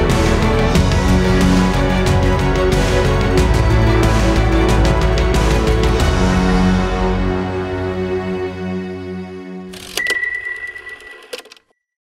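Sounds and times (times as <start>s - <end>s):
click: 9.8s - 11.7s.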